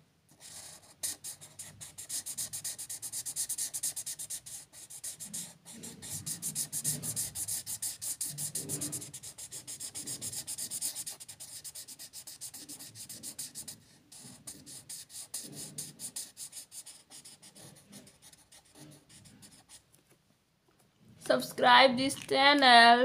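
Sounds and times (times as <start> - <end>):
marker scratching on paper: 0.3 - 19.8.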